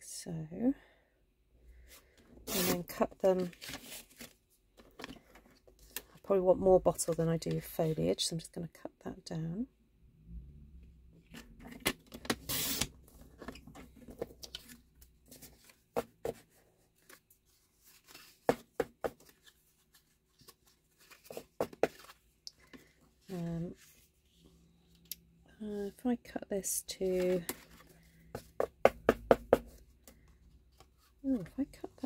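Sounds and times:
paper rustling: 0:19.2 - 0:22.9.

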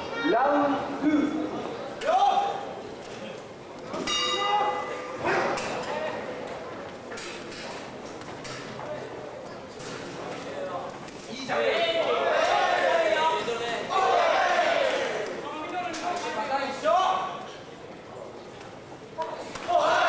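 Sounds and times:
voices in a hall: 0:00.0 - 0:20.0
boxing bell ringing: 0:04.1 - 0:05.2
crowd shouting: 0:11.5 - 0:15.5, 0:19.5 - 0:20.0.

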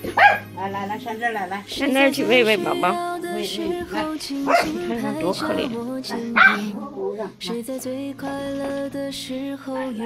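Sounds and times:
dog yelping: 0:00.0 - 0:00.5, 0:06.4 - 0:06.7
soft music with held notes: 0:00.0 - 0:10.0.

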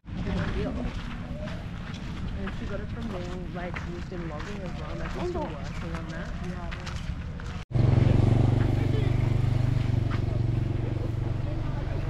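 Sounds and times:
vehicle engine humming: 0:07.7 - 0:12.0.

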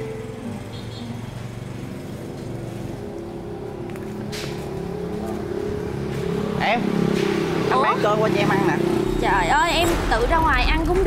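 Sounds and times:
street background noise: 0:00.0 - 0:11.0
vehicle engine humming: 0:00.0 - 0:11.0.

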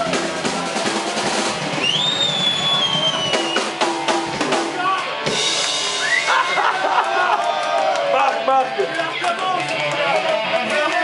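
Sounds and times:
drum kit being struck: 0:00.0 - 0:06.4
high whistling tone sliding down: 0:01.8 - 0:03.7.

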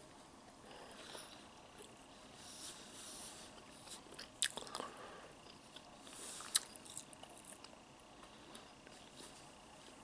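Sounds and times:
person chewing food: 0:03.4 - 0:10.0
crackly mouth sounds: 0:03.6 - 0:08.9.

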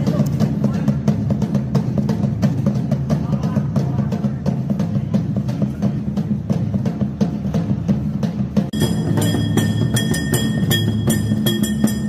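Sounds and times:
bass drum beating: 0:00.0 - 0:12.0
small hand drum beating: 0:08.6 - 0:12.0.

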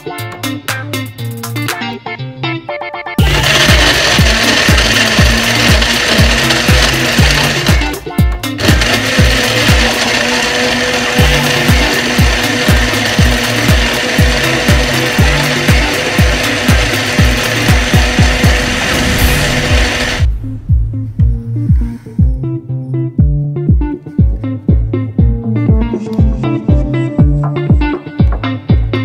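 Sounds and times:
blender grinding ice: 0:03.2 - 0:08.0, 0:08.6 - 0:20.3.

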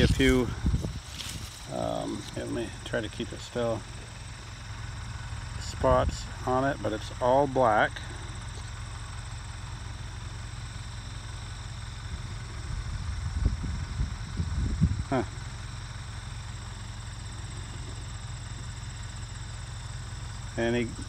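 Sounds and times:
wind buffeting microphone: 0:00.0 - 0:01.7, 0:12.6 - 0:15.1
low rumble: 0:00.0 - 0:06.5, 0:12.1 - 0:15.2
crickets chirring: 0:00.0 - 0:21.0.

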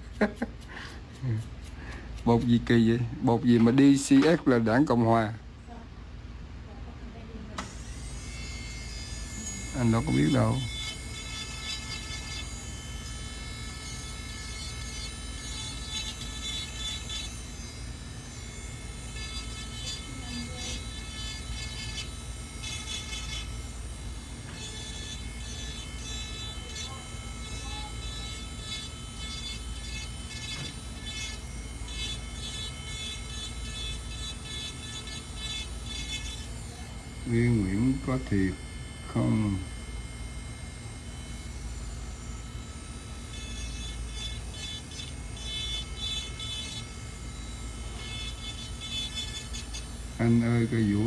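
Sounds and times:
drill bit grinding on nail: 0:00.0 - 0:05.3, 0:07.6 - 0:51.0
electric nail drill whining: 0:00.0 - 0:05.3, 0:07.5 - 0:51.0.

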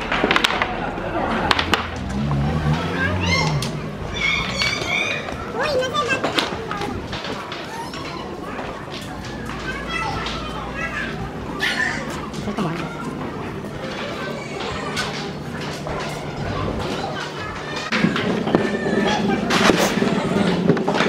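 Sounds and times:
children calling and chattering: 0:00.0 - 0:21.0
adult voices: 0:00.7 - 0:21.0.

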